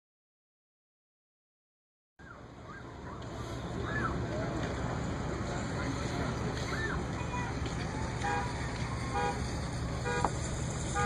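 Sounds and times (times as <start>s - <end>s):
engine and road noise in cab: 2.2s - 11.0s.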